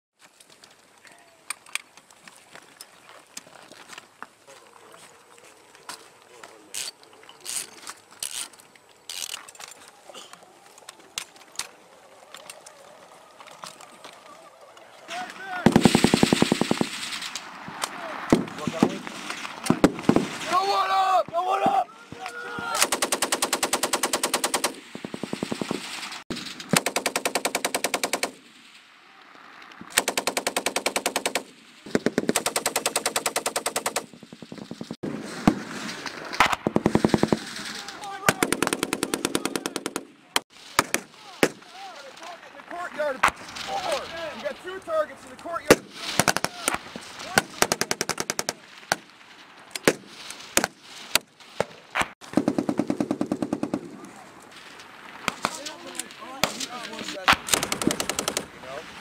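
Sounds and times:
machine gun bursts: 15.7 - 17.2, 22.8 - 28.4, 29.9 - 34.1, 57.5 - 58.5.

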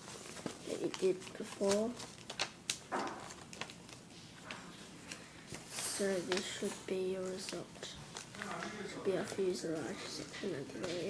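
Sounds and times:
paper crinkling and rustling: 0.0 - 11.0.

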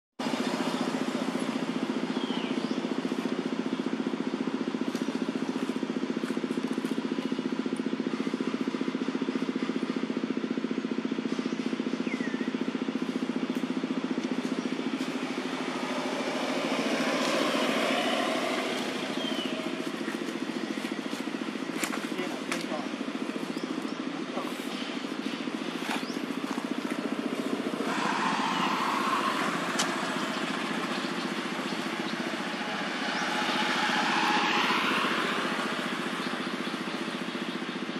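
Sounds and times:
engine running steadily: 0.2 - 37.9
rush of noise: 27.0 - 37.2.

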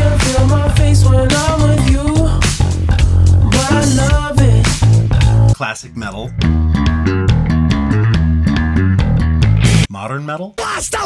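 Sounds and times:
slapped electric bass riff: 0.0 - 9.9.

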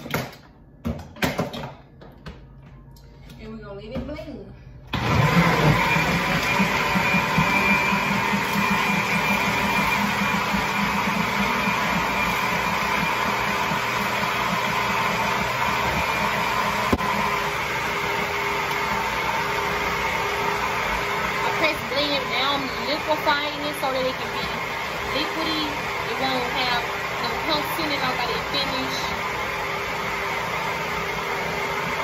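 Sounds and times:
blender running: 4.9 - 32.0.

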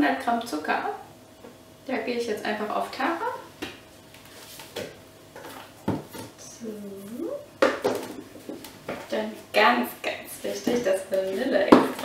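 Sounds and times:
woman's wordless voice: 6.4 - 7.5, 9.1 - 11.9.

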